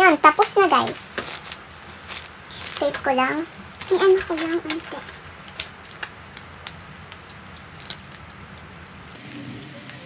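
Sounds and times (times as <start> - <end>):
tape and paper clicking: 0.7 - 10.0.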